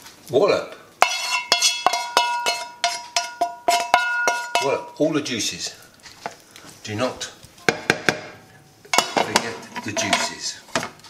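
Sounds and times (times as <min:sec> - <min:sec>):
knife scraping frying pan: 0:01.0 - 0:04.9, 0:08.9 - 0:10.6.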